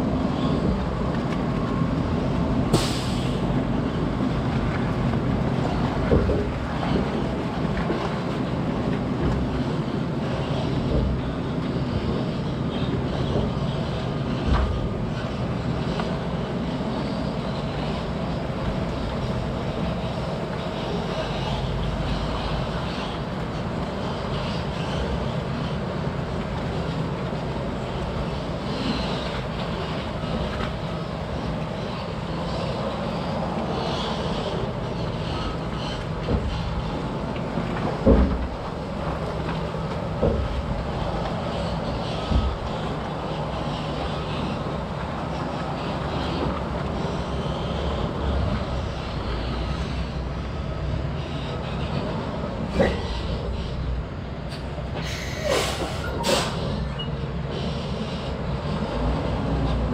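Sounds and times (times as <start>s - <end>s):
trailer clanking over bumps: 0.0s - 59.9s.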